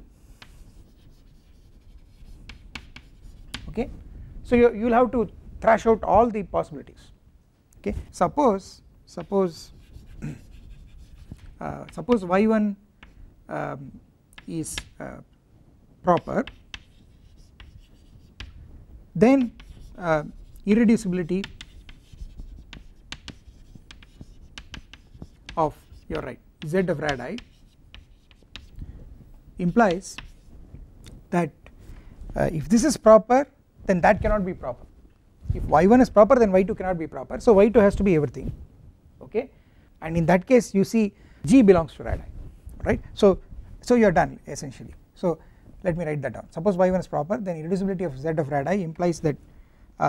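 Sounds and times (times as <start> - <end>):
chalk scratching on blackboard: 0.1 - 3.8, 9.2 - 12.3, 16.1 - 18.6, 19.3 - 28.8, 29.6 - 30.5
sharp chalk clicks: 0.4 - 3.7, 9.2 - 12.3, 13.0 - 13.2, 14.3 - 15.0, 16.1 - 18.6, 19.4 - 28.8, 29.6 - 30.5.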